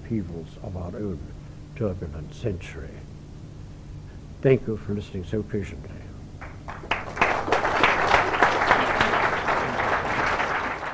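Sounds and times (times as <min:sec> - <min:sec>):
audience applauding: 0:06.4 - 0:10.9.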